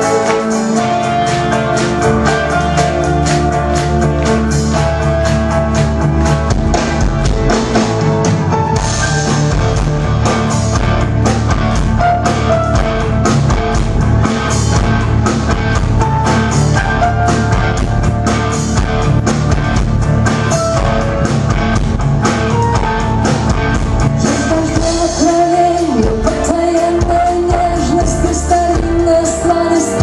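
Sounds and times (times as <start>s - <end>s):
steady drum beat: 0.0s - 29.2s
electric guitar: 0.0s - 30.0s
rock band playing live: 0.0s - 30.0s.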